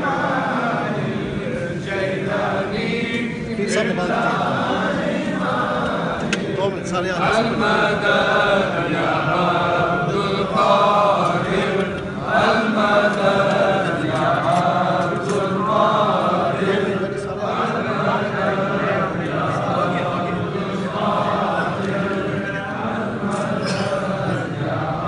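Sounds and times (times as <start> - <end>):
men chanting in unison: 0.0 - 25.0.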